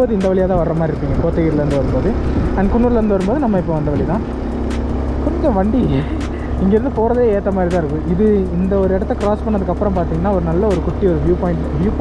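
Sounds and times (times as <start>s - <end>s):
man talking: 0.0s - 4.3s, 5.2s - 12.0s
motorcycle engine drone: 0.0s - 12.0s.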